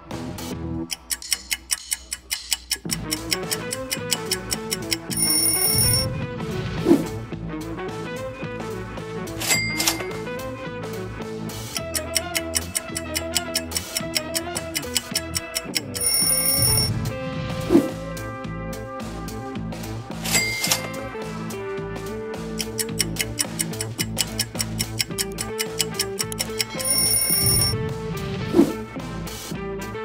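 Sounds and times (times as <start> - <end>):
background music: 0.0 - 30.0
clock ticking fast: 0.8 - 6.1, 9.4 - 10.2, 11.6 - 17.0, 20.2 - 21.2, 22.4 - 27.8
ringing alarm sound effect: 3.1 - 6.1, 9.4 - 10.2, 11.8 - 17.0, 20.3 - 21.2, 22.8 - 27.8.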